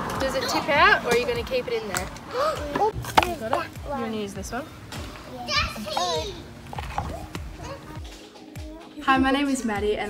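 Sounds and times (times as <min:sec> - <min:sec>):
children playing: 0:02.3 - 0:04.3, 0:05.0 - 0:09.0.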